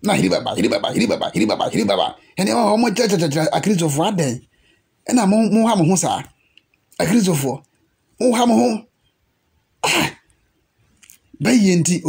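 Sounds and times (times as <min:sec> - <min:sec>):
man coughing: 0:09.8 - 0:10.2.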